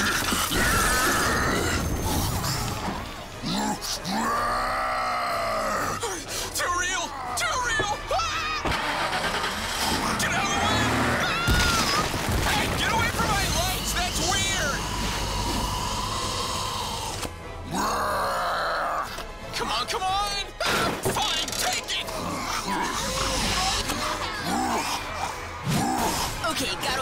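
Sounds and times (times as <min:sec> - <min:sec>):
cartoon monster crying out: 0:14.2 - 0:19.2.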